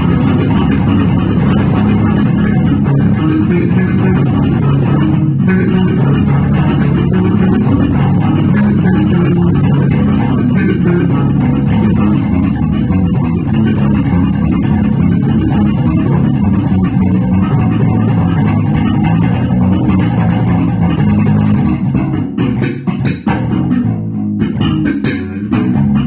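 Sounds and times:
electric bass funk groove: 0:00.0 - 0:26.0.

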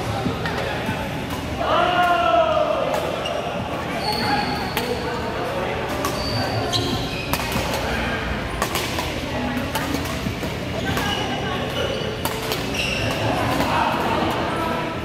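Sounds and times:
voices in hall: 0:00.0 - 0:15.0
shoes squeaking on court floor: 0:03.0 - 0:14.6
racket hitting shuttlecock: 0:05.8 - 0:06.3, 0:06.9 - 0:08.0, 0:08.6 - 0:14.4.

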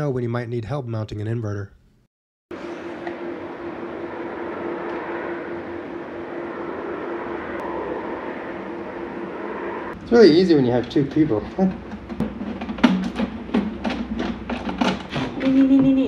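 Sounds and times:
machine hum: 0:02.5 - 0:16.0.

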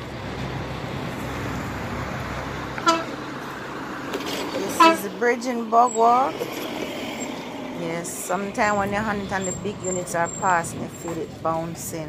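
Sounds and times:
car engine humming: 0:00.0 - 0:12.0
car horn toots: 0:02.8 - 0:03.2, 0:04.6 - 0:05.1.

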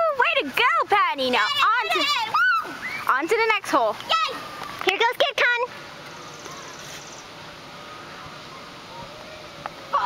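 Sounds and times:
outdoor background noise: 0:00.0 - 0:10.0
faint distant voices: 0:01.4 - 0:10.0.

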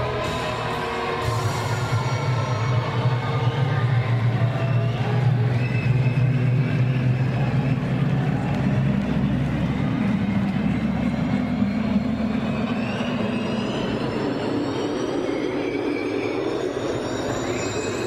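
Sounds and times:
low drone tones: 0:00.0 - 0:18.0.

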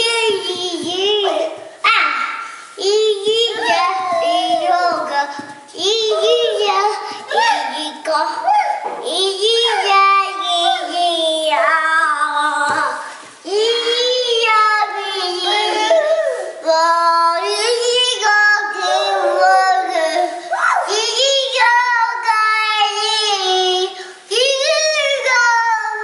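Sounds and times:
girl singing: 0:00.0 - 0:26.0.

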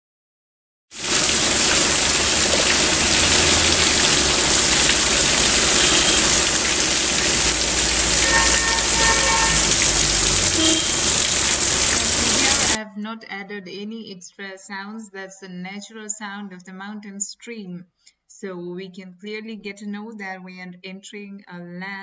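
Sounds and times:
stream rushing over rocks: 0:01.0 - 0:12.8.

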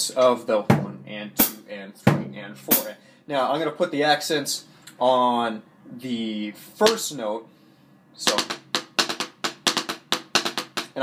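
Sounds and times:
drumsticks on practice pad: 0:08.2 - 0:11.0.

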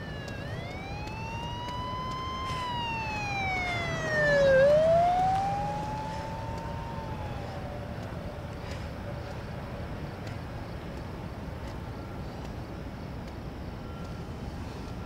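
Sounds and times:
emergency siren wailing: 0:00.0 - 0:10.0
low steady rumble: 0:00.0 - 0:15.0.

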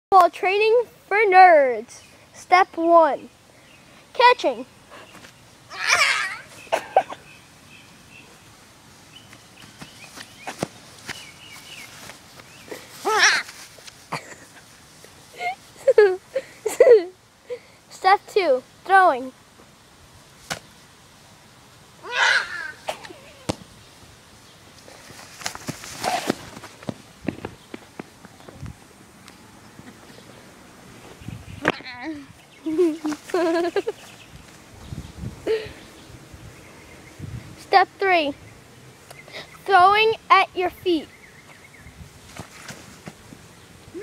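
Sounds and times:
person yelling: 0:05.7 - 0:06.5, 0:13.0 - 0:13.4, 0:22.0 - 0:22.8
person falling onto grass: 0:09.6 - 0:14.4, 0:20.4 - 0:20.7, 0:24.8 - 0:28.0, 0:42.2 - 0:43.2
football hitting grass: 0:09.8 - 0:11.2, 0:20.4 - 0:20.7, 0:23.4 - 0:23.7, 0:25.1 - 0:27.5.

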